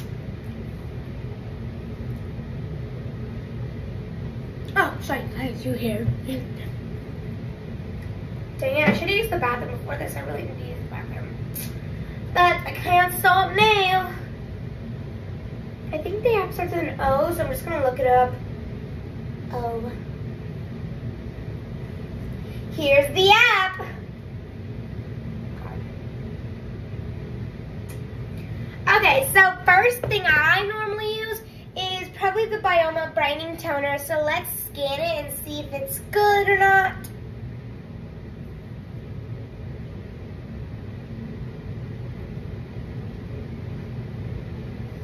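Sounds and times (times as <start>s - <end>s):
low rumbling hum: 0.0s - 45.0s.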